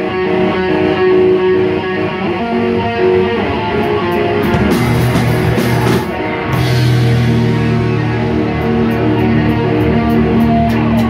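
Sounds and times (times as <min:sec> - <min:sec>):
bass guitar: 0:00.0 - 0:11.0
electric guitars playing: 0:00.0 - 0:11.0
drum hits: 0:04.4 - 0:08.0.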